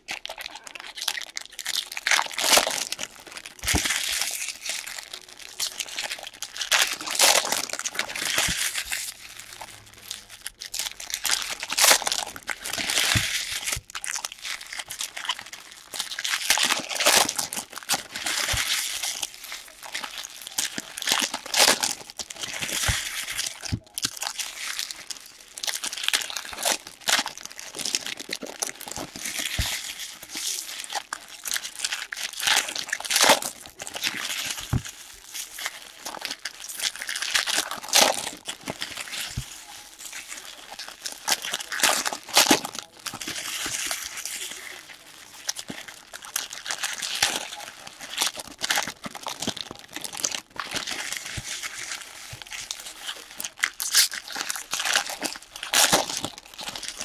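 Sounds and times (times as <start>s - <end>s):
foil wrappers crinkling: 0.0s - 57.0s.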